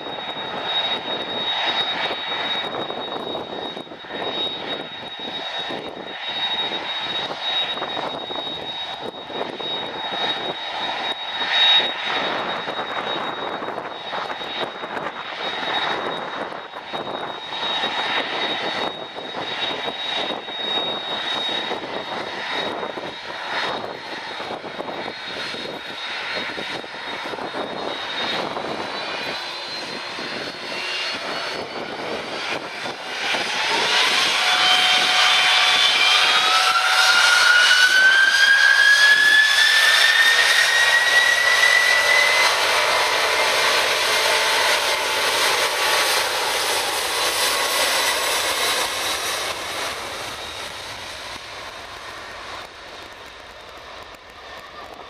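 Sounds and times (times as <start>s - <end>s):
jet engine rushing noise: 0.0s - 55.0s
jet engines whining: 0.0s - 55.0s.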